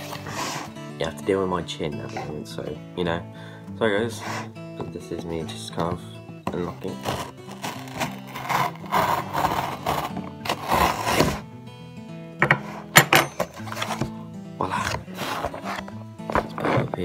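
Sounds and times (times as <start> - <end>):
knife scraping cardboard box tape: 0.0 - 0.8, 6.6 - 11.4, 13.5 - 14.2, 14.8 - 17.0
background music: 0.0 - 17.0.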